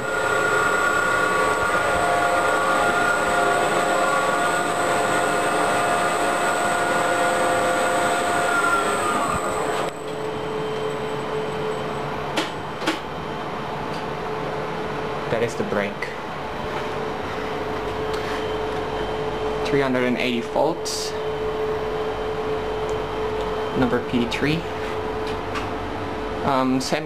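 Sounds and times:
elevator machine hum and whine: 0.0 - 27.0
machine room hum: 0.0 - 27.0.

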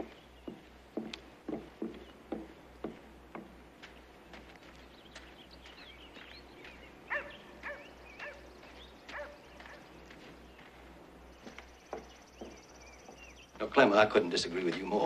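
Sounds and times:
faint knocks: 0.0 - 3.6, 11.4 - 13.4
dog barking faintly: 7.1 - 8.5, 9.1 - 9.8.

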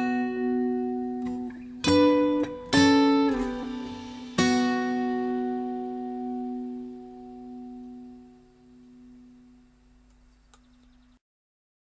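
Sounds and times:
guitar chord ringing out: 0.0 - 10.0.

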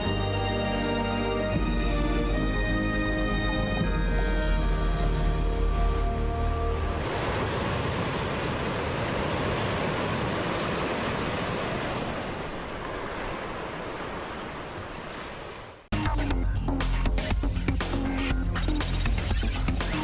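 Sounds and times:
rushing noise like surf: 6.8 - 15.9.

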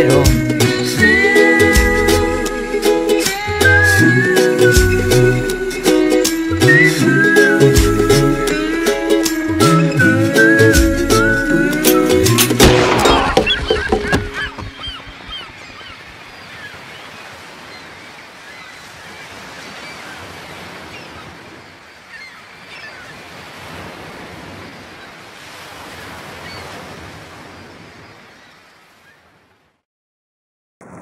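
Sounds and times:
song: 0.0 - 14.4
short bird calls: 13.1 - 19.0.

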